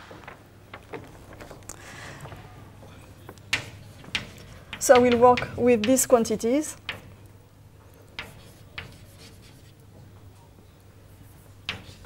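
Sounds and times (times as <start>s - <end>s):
chalk tapping on blackboard: 3.5s - 6.2s, 6.8s - 7.2s, 8.1s - 10.1s, 11.1s - 12.0s
chalk scratching on blackboard: 8.2s - 9.8s, 11.1s - 12.0s.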